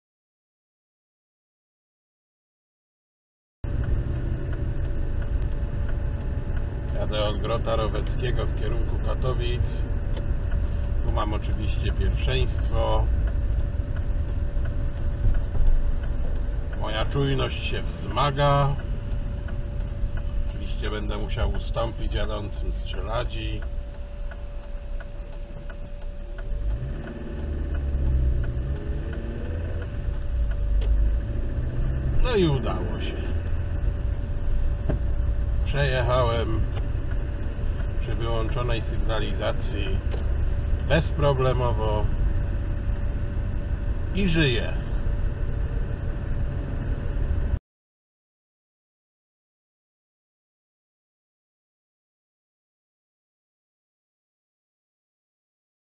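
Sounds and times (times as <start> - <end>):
car engine and road rumble: 3.6 - 47.6
faint regular ticks: 3.7 - 32.8.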